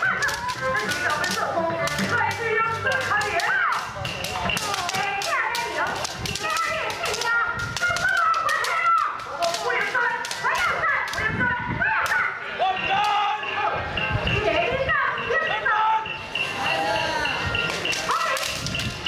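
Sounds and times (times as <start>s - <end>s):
bamboo swords clacking: 0.0s - 11.3s, 17.6s - 19.0s
high-pitched shouts: 4.6s - 13.9s, 14.5s - 18.7s.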